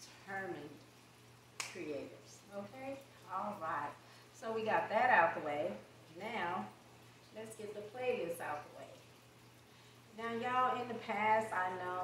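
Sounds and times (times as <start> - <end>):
woman speaking: 0.0 - 0.8, 1.6 - 6.7, 7.4 - 9.0, 10.1 - 12.0
low steady hum: 0.0 - 12.0
sharp snap-like click: 1.6 - 1.8.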